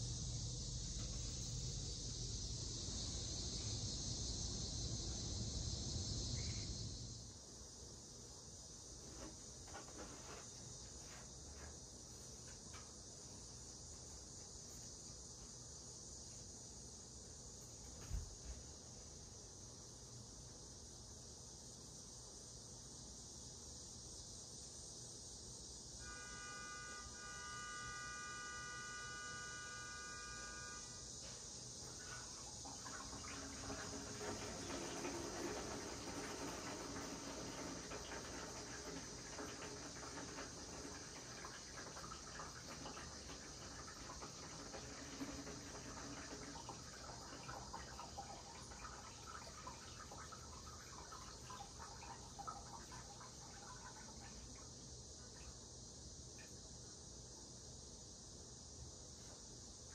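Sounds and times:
steady high hiss: 0.0s - 59.9s.

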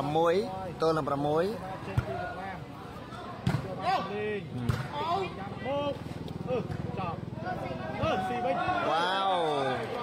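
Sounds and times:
ball kicked thuds: 3.4s - 3.7s.

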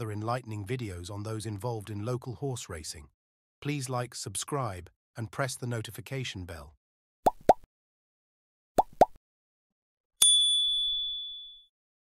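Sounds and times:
notification bell ding: 10.2s - 11.7s.

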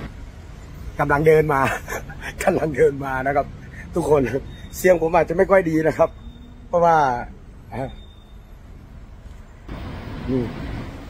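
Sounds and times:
road traffic hum: 0.0s - 11.0s.

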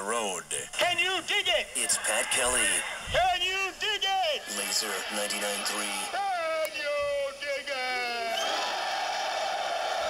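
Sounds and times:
radio jingle: 0.0s - 6.1s.

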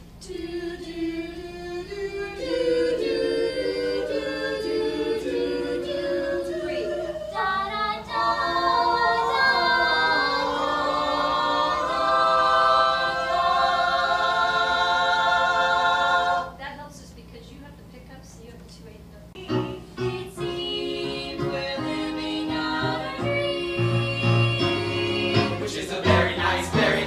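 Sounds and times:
cast singing in harmony: 0.2s - 16.6s, 19.4s - 27.0s.

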